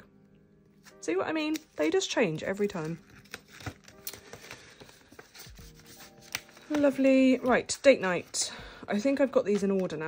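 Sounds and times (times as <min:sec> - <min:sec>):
faint background music: 0:00.0 - 0:10.0
banknotes and envelope rustling: 0:00.8 - 0:10.0.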